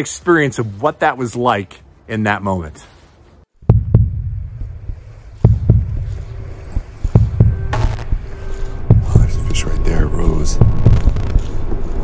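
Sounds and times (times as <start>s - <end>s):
wind buffeting microphone: 3.6s - 12.0s
sharp knocks: 5.4s - 6.1s, 6.8s - 8.2s.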